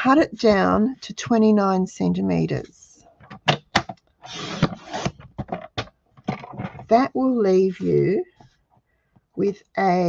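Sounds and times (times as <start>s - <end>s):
paper sliding rustle: 4.2s - 5.3s.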